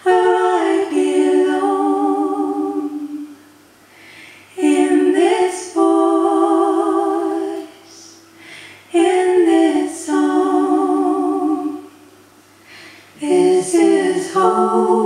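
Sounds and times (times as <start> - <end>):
woman singing unaccompanied: 0.0 - 3.4, 4.6 - 8.2, 8.9 - 11.9, 13.2 - 15.0
singer breathing in: 3.8 - 4.5, 8.2 - 8.9, 12.6 - 13.2.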